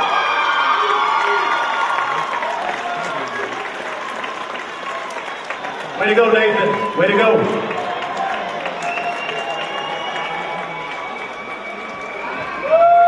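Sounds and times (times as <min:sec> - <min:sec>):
audience applauding and cheering: 0:00.0 - 0:13.0.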